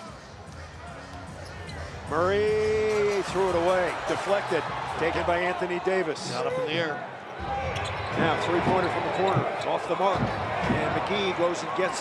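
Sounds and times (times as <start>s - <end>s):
faint music over loudspeakers: 0.0s - 9.5s
crowd noise: 0.0s - 12.0s.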